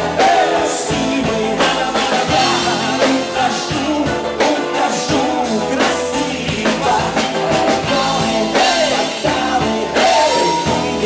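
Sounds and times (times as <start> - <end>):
drum kit: 0.0 - 11.0
electric guitar: 0.0 - 11.0
man singing: 0.0 - 11.0.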